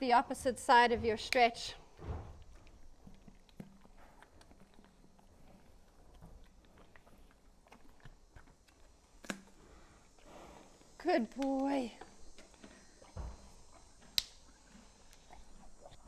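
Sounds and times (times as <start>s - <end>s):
horse chewing carrot: 0.3s - 11.0s, 12.0s - 16.0s.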